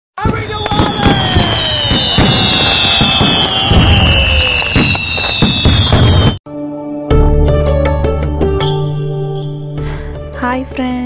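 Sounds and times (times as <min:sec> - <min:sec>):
fireworks bangs and crackling: 0:00.2 - 0:06.4
falling firework whistles: 0:00.3 - 0:06.4.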